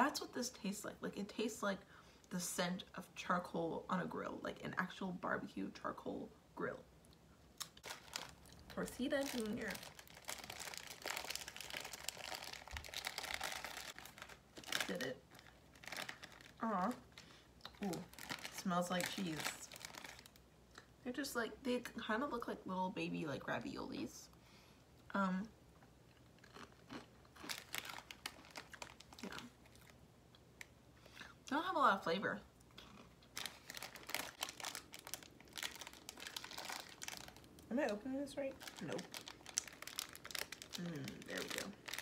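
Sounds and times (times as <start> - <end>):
person chewing crunchy snacks: 7.6 - 18.6, 26.1 - 30.4, 32.6 - 37.6, 38.6 - 42.0
plastic bag crinkling: 7.6 - 20.4, 26.4 - 30.0, 32.8 - 42.0.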